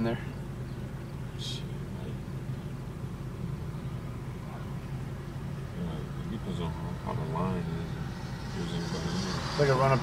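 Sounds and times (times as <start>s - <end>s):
car engine hum: 0.0s - 10.0s
road noise: 0.0s - 10.0s.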